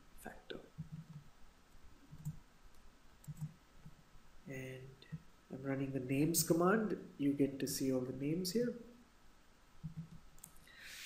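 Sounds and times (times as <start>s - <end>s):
keyboard and mouse clicks: 0.8s - 1.3s, 2.1s - 4.0s, 9.8s - 10.6s.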